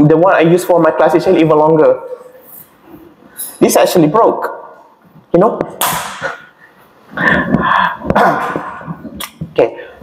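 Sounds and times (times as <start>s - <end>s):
man clearing throat: 7.2s - 9.0s.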